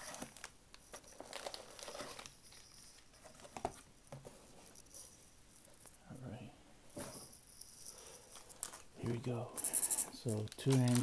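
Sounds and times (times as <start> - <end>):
plastic packs rustling and crinkling: 0.0 - 4.7, 8.0 - 9.4, 10.1 - 11.0.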